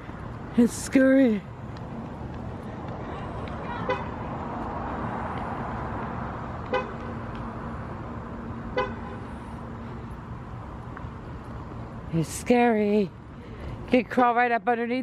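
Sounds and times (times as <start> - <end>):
outdoor traffic noise: 0.0 - 15.0
horn toots: 6.6 - 7.2, 8.7 - 9.3.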